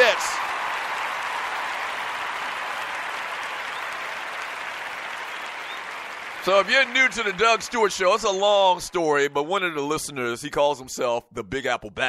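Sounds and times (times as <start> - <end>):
applause: 0.0 - 9.3.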